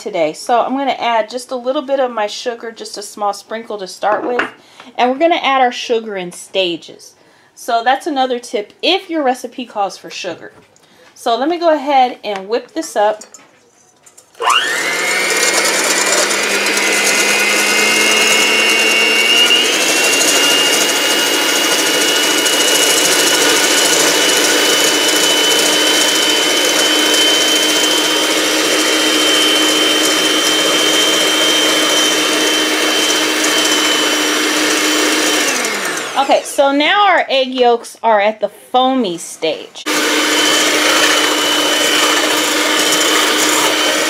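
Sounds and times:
electric hand mixer whisking: 14.4 - 37.1, 39.8 - 44.0.

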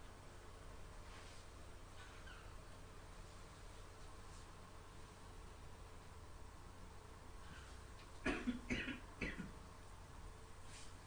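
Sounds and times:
person coughing: 8.2 - 9.6.

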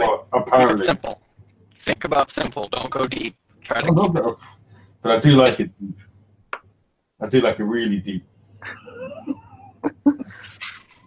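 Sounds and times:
people giggling: 8.6 - 10.7.

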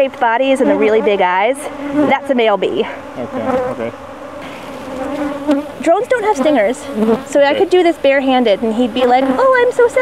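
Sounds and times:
honeybees buzzing: 0.0 - 10.0.

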